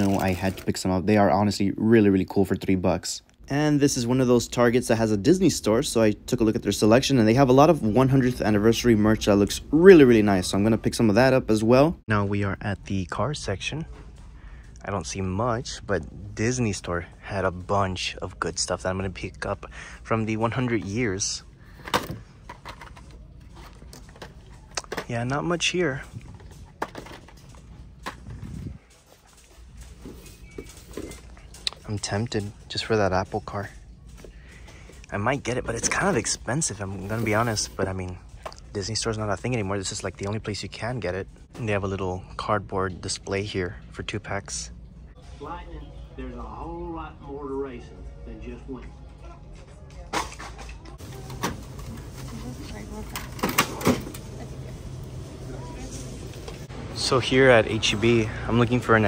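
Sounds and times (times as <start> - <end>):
store background hum: 0.0 - 59.0
clicks and knocks of items handled: 21.8 - 25.4, 26.0 - 32.6.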